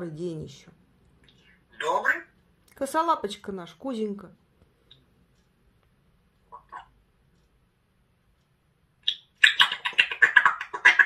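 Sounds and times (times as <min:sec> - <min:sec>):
parrot chattering: 0:01.7 - 0:02.4, 0:06.5 - 0:07.0, 0:09.0 - 0:11.0.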